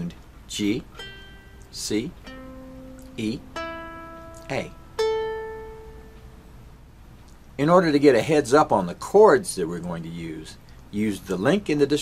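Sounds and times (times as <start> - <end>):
ukulele string plucked: 0.9 - 6.4.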